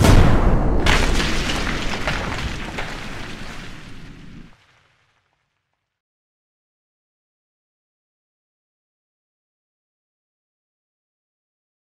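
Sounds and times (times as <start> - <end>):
deep cinematic boom: 0.0 - 3.2.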